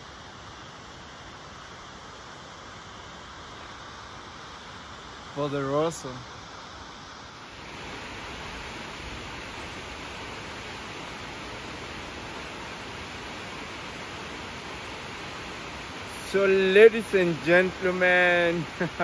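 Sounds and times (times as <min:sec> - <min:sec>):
waterfall rushing: 0:00.8 - 0:19.0.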